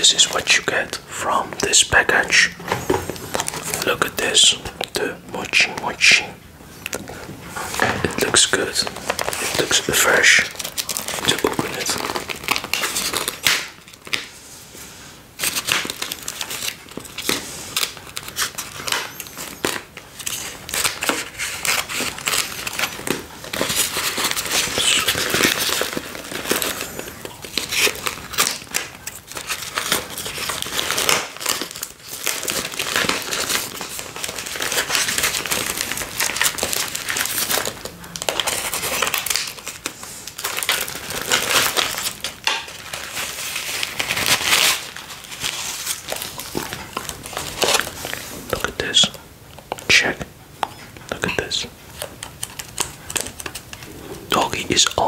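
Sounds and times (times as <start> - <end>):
plastic packaging crinkling: 0.0 - 50.2, 51.4 - 55.0.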